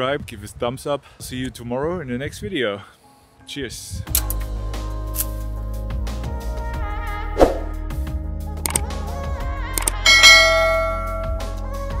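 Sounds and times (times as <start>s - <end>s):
background music: 3.0s - 12.0s
notification bell chime: 10.1s - 11.5s.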